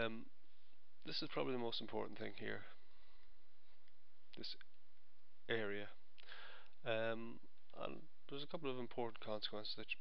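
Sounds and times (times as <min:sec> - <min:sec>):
man speaking: 0:00.0 - 0:00.3, 0:01.0 - 0:02.8, 0:04.3 - 0:04.7, 0:05.4 - 0:06.1, 0:06.8 - 0:10.0
recording hiss: 0:00.0 - 0:10.0.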